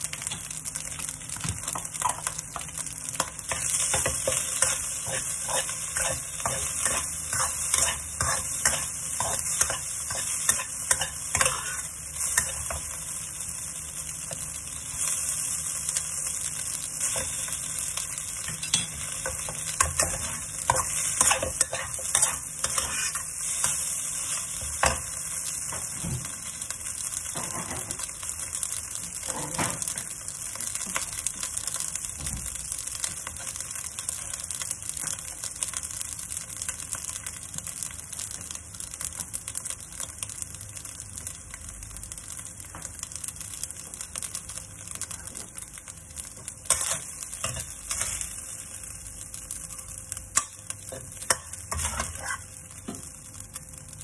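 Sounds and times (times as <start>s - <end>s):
fried rice sizzling in a wok: 0.0s - 54.0s
metal turner scraping a wok: 3.5s - 12.8s, 18.6s - 23.3s, 51.3s - 52.5s.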